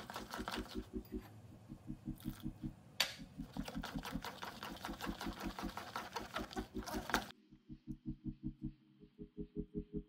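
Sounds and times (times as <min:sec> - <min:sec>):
steady low pulse: 0:00.8 - 0:03.0, 0:07.3 - 0:10.0
spoon stirring thick batter: 0:03.4 - 0:07.3.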